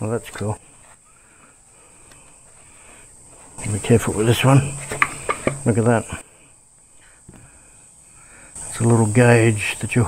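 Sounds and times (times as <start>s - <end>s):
faint high-pitched hiss: 0.0s - 10.0s.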